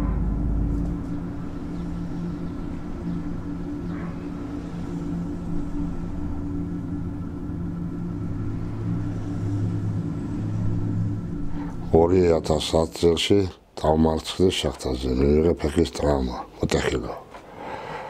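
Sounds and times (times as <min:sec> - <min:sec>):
deeper hum tone: 0:00.0 - 0:17.0
low mechanical hum: 0:00.0 - 0:18.0.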